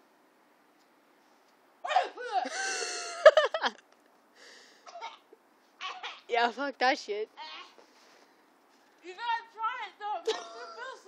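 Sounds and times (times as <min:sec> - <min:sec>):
breathy rush: 0:04.3 - 0:05.0.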